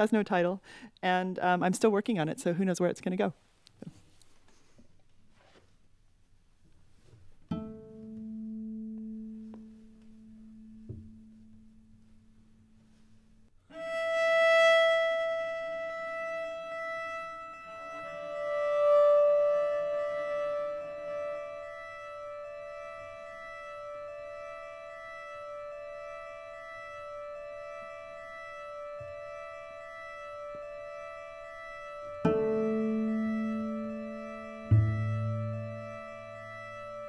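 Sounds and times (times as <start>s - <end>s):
cello bowed notes: 7.5s - 37.0s
low cello note: 7.5s - 37.0s.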